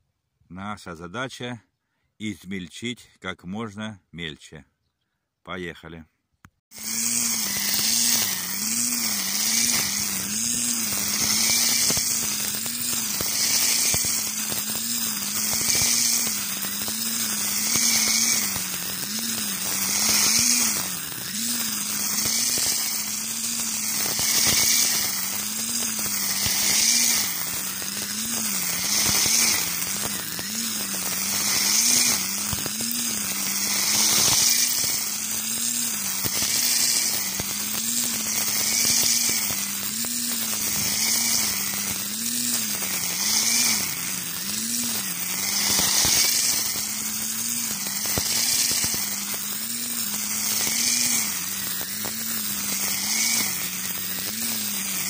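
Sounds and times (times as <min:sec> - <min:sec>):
electric string trimmer motor hum: 0:06.7 - 0:55.0
trimmer line hissing through stalks: 0:06.7 - 0:55.0.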